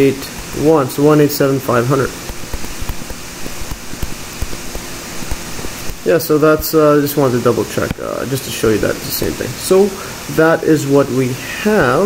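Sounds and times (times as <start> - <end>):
steady hiss: 0.0 - 12.0
stylus tapping on a tablet: 2.2 - 6.0.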